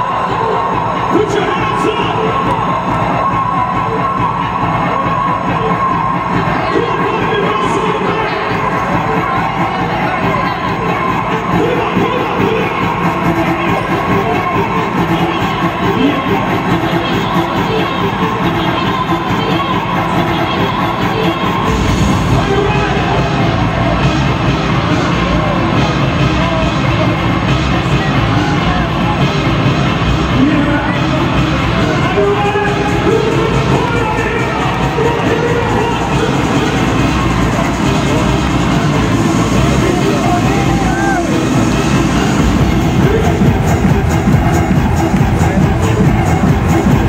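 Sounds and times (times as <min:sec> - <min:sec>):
crowd cheering and shouting: 0:00.0 - 0:47.0
live dance music: 0:00.0 - 0:47.0.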